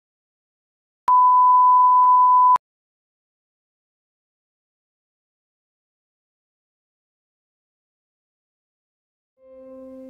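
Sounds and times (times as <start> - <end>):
steady test tone beep: 1.1 - 2.6.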